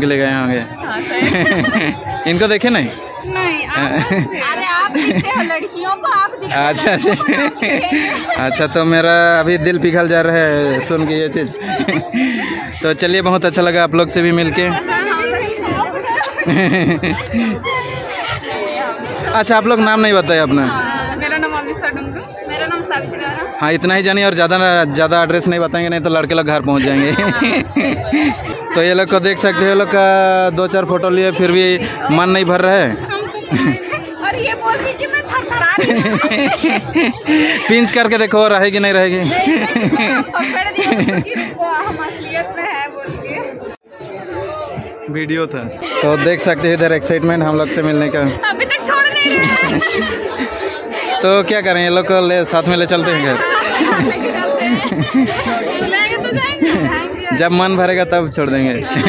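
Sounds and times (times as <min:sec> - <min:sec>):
crowd noise: 0:00.0 - 0:59.0
people talking at once: 0:00.0 - 0:59.0.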